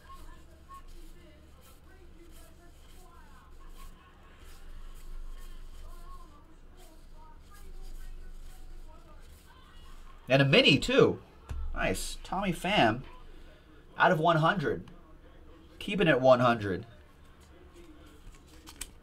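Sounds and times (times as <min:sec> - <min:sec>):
faint voices: 0:00.0 - 0:19.0
cards flipping clicks and slides: 0:18.1 - 0:19.0.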